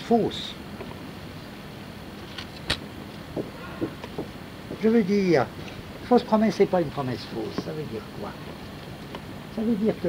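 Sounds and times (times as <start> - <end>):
tape hiss: 0.0 - 10.0.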